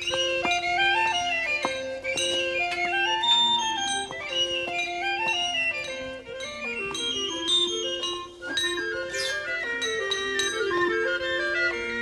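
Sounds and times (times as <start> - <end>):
held accompanying notes: 0.0 - 12.0
wooden pipe melody: 0.0 - 12.0.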